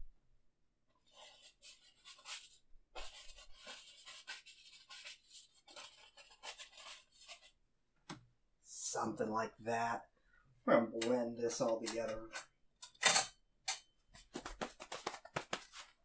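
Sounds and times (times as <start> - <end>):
scratchy brush strokes on canvas: 1.0 - 7.6.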